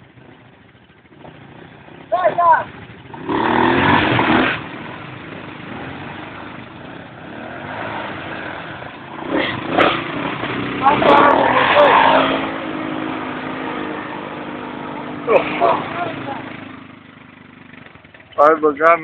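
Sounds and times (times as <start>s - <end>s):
quad engine under load: 0.0s - 19.0s
voices shouting: 2.0s - 2.8s, 10.6s - 17.4s.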